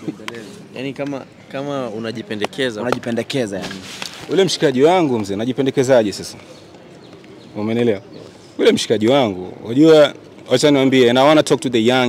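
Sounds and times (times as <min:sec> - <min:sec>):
man talking: 0:00.0 - 0:06.4, 0:07.6 - 0:12.0.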